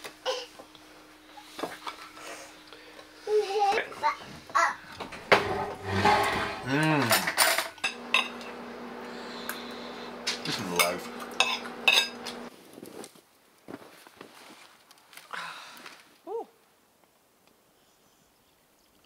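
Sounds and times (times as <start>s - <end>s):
cutlery clinking on ceramic plates: 10.8s - 12.2s.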